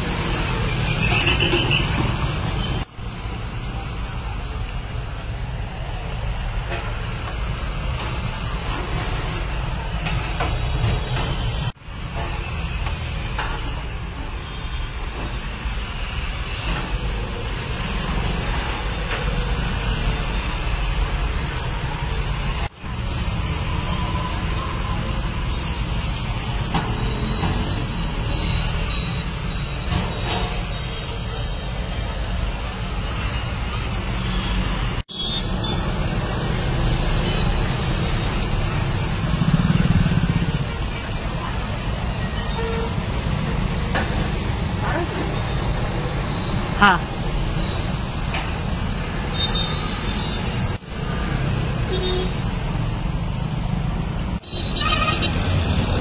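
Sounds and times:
traffic rumble: 0:00.0 - 0:56.0.

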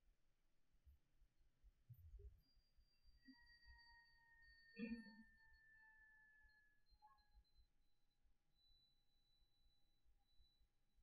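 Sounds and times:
faint steady high tones: 0:02.4 - 0:08.0.

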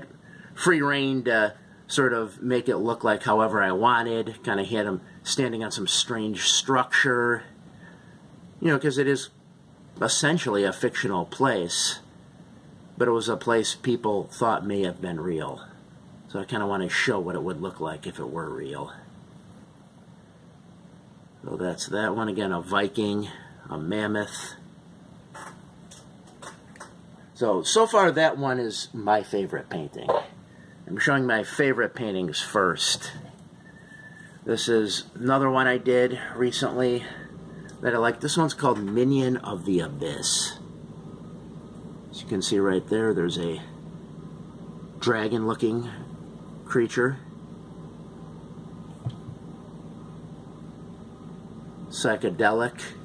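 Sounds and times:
fan hum and hiss: 0:00.0 - 0:53.0.

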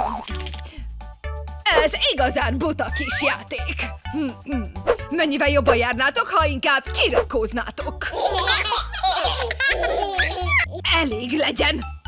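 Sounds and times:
cartoon baby voices giggling: 0:00.0 - 0:00.7, 0:08.0 - 0:10.9
children's music with bass beat: 0:00.0 - 0:12.0.

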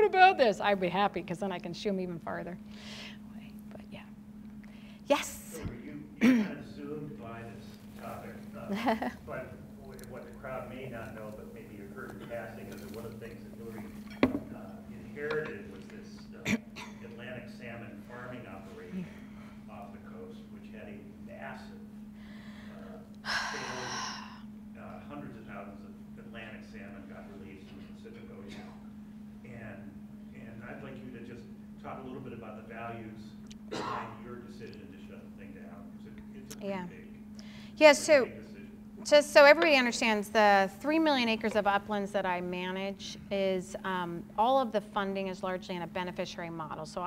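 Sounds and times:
steady low hum: 0:00.0 - 0:47.0
person sighing loudly: 0:22.3 - 0:24.5
person talking: 0:36.5 - 0:37.0
woman speaking softly: 0:36.6 - 0:36.9.

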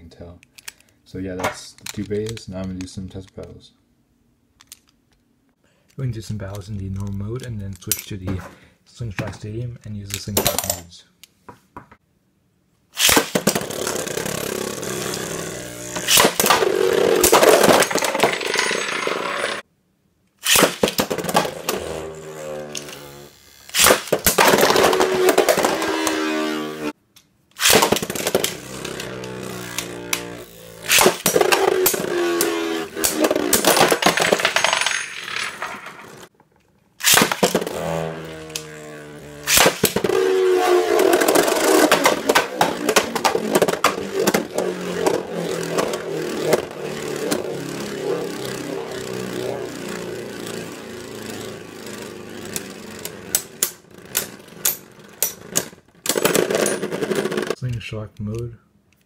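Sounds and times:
spinning tops whirring: 0:13.0 - 0:19.6, 0:20.4 - 0:27.0, 0:27.6 - 0:36.3, 0:37.0 - 0:57.6
tops clacking together: 0:27.6 - 0:57.6.

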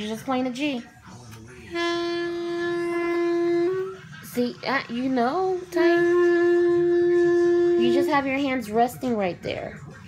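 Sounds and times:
clarinet holding a note: 0:01.7 - 0:04.1, 0:05.8 - 0:08.5.

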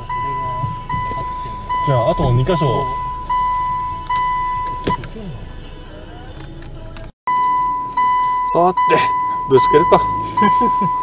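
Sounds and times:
high electronic warning beeps: 0:00.0 - 0:05.1, 0:07.3 - 0:11.0.

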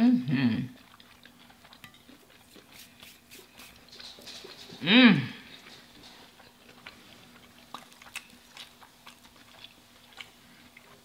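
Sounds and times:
chewing food: 0:00.7 - 0:11.0.

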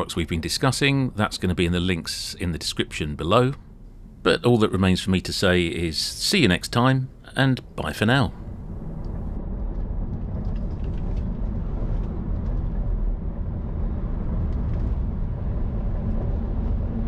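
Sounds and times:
tyre and road noise in car: 0:08.5 - 0:17.0.

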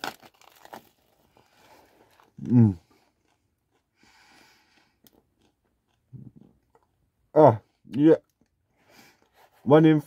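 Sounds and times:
bread crust crunching: 0:00.0 - 0:06.9.

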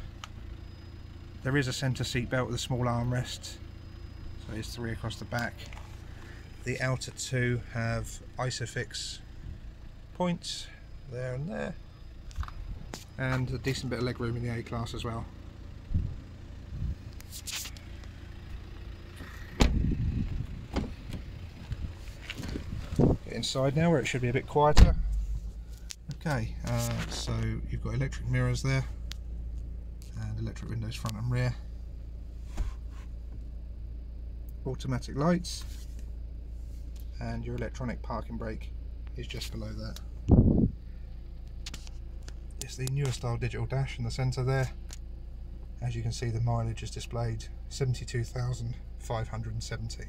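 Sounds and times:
low background rumble: 0:00.0 - 0:50.0
steady low hum: 0:00.0 - 0:50.0
rustle against phone: 0:17.2 - 0:17.9.

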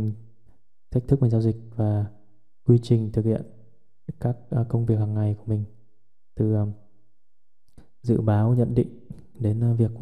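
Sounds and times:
man speaking: 0:00.0 - 0:00.2, 0:00.9 - 0:02.1, 0:02.7 - 0:03.5, 0:04.1 - 0:05.7, 0:06.4 - 0:06.8, 0:08.0 - 0:10.0.

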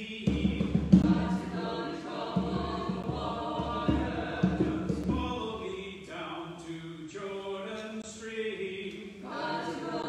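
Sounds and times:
small choir singing a hymn: 0:00.0 - 0:10.0.

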